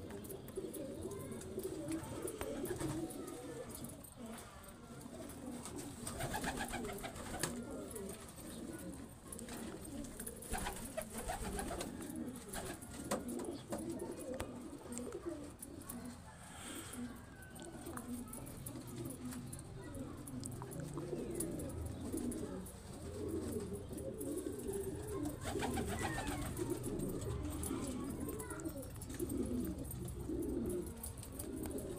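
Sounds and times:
pigeons cooing: 0:00.0 - 0:31.9.

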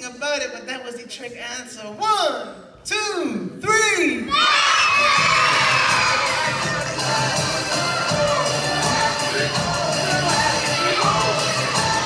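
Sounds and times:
children shouting and cheering: 0:04.3 - 0:12.0.

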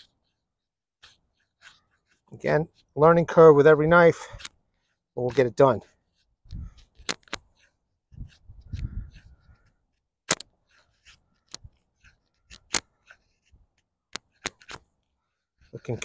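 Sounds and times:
knife shaving wood clicks: 0:01.0 - 0:15.0
wind on microphone: 0:06.4 - 0:06.8, 0:08.1 - 0:09.6.

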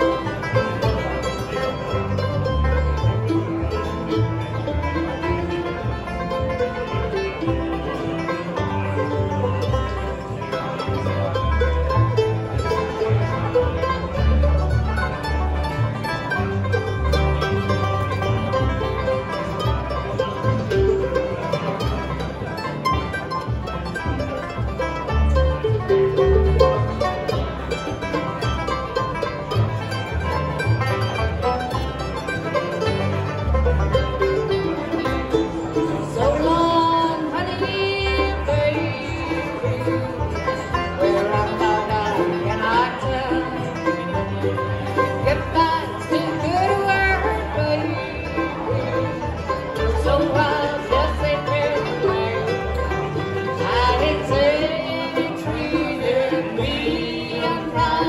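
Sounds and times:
banjo picking: 0:00.0 - 0:58.0
mandolin: 0:00.0 - 0:58.0
plucked upright bass: 0:00.0 - 0:58.0
acoustic guitar picking: 0:02.7 - 0:58.0.

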